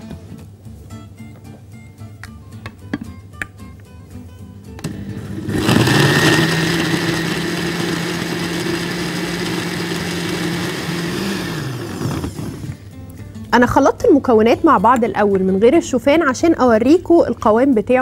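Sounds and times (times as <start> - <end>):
light background music: 0.0 - 11.5, 12.5 - 18.0
electric blender running: 4.8 - 12.8.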